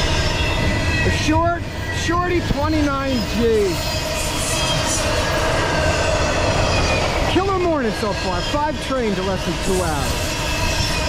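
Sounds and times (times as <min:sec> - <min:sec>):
train wheels rumbling on rail: 0:00.0 - 0:11.0.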